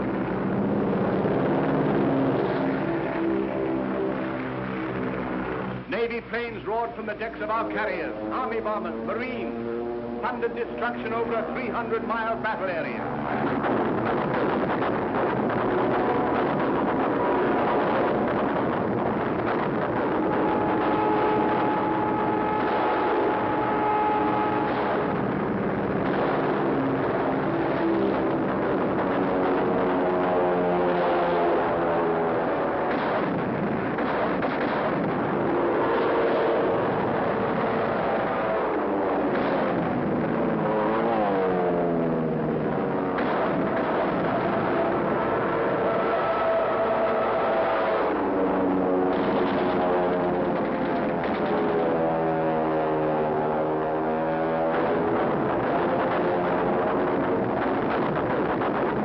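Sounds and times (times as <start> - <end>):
aircraft engines passing: 0.0 - 59.0
anti-aircraft gunfire: 0.0 - 59.0.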